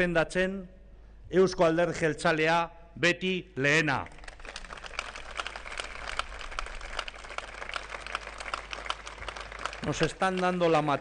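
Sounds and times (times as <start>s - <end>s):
audience applauding: 4.0s - 11.0s.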